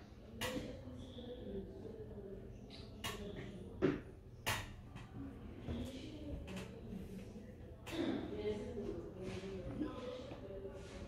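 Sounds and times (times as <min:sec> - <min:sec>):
faint low murmur: 0:00.0 - 0:11.0.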